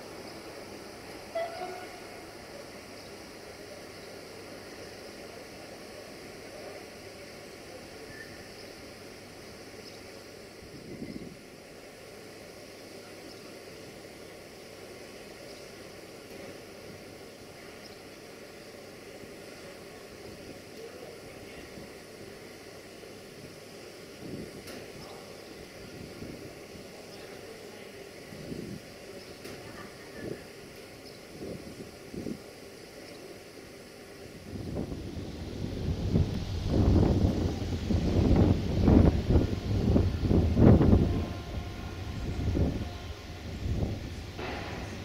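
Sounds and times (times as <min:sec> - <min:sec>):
train rumbling: 0:00.0 - 0:45.0.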